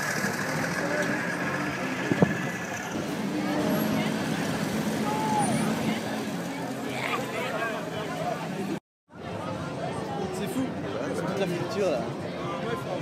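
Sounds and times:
crowd talking: 0:00.0 - 0:13.0.

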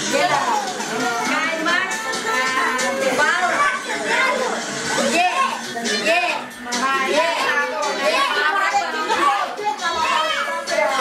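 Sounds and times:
women and children talking: 0:00.0 - 0:11.0.

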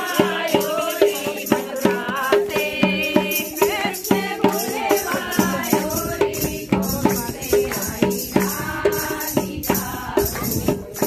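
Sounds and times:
hand drum beat: 0:00.0 - 0:11.0
women singing in unison: 0:00.0 - 0:11.0.

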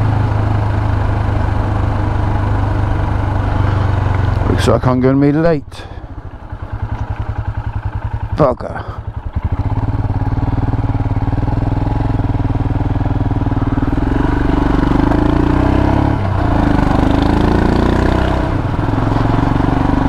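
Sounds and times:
motorcycle engine accelerating: 0:00.0 - 0:20.0.

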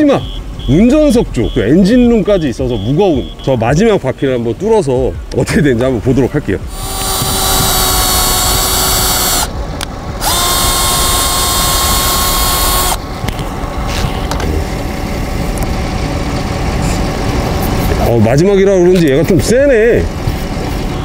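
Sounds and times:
cordless drill whining: 0:06.7 - 0:09.5, 0:10.2 - 0:13.0.

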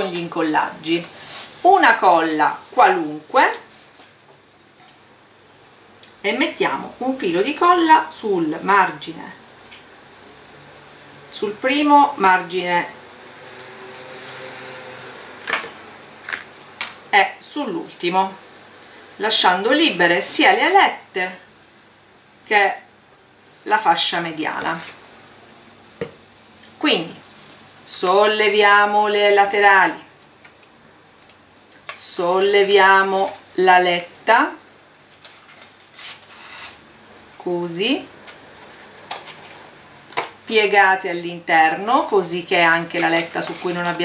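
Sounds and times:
paper rustling: 0:00.9 - 0:04.2, 0:34.8 - 0:37.3, 0:38.2 - 0:39.8, 0:42.6 - 0:44.0.

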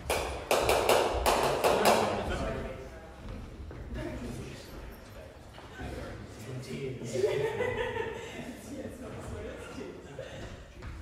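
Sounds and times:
footsteps on wooden floor: 0:02.2 - 0:05.0.

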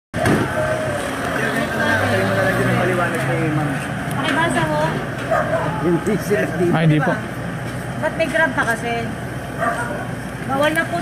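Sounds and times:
indistinct voices: 0:00.2 - 0:07.3
vehicle engine humming: 0:00.2 - 0:11.0.

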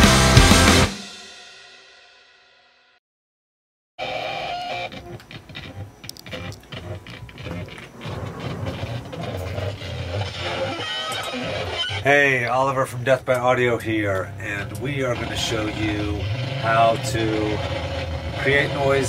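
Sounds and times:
distorted electric guitar: 0:00.0 - 0:00.9, 0:04.0 - 0:12.0, 0:14.2 - 0:19.0
drum-backed intro jingle: 0:00.0 - 0:02.4.

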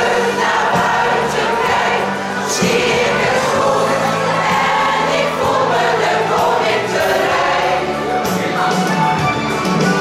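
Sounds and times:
mixed choir singing: 0:00.0 - 0:09.3.

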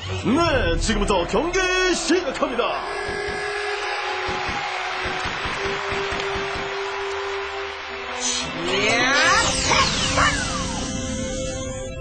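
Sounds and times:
tv background music: 0:00.0 - 0:12.0.

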